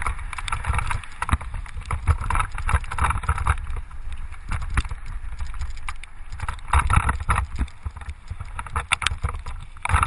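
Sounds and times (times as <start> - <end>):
bike knocks and rattles: 0.0 - 10.0
wind rushing over microphone: 0.0 - 10.0.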